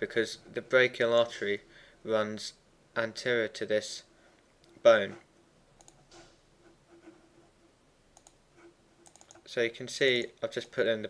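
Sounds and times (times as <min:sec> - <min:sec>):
faint mouse and keyboard clicks: 0:05.8 - 0:06.3, 0:08.2 - 0:08.4, 0:09.0 - 0:09.5.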